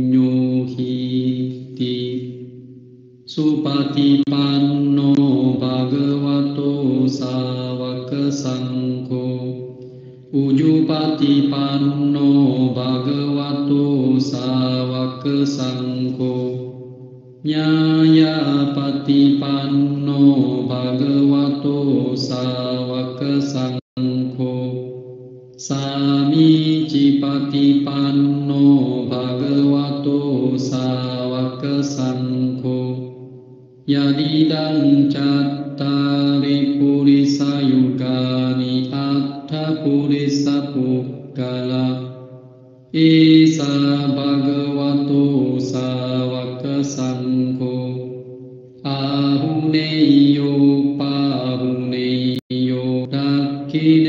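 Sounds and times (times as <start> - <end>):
person chanting long tones: 0.0 - 54.0.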